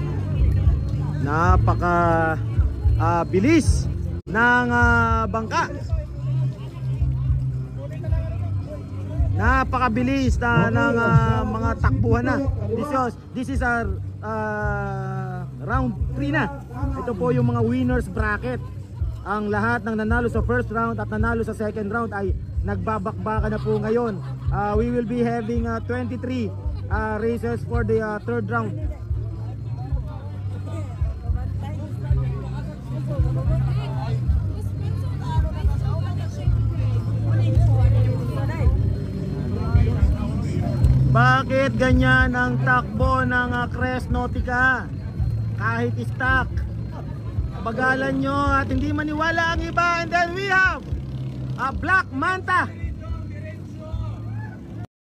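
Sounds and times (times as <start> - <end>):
boat engines droning: 0.0 - 54.9
crowd chatter: 0.0 - 54.9.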